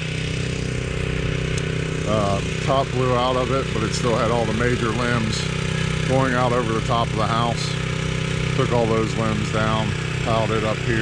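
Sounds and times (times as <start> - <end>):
engine running steadily: 0.0 - 11.0.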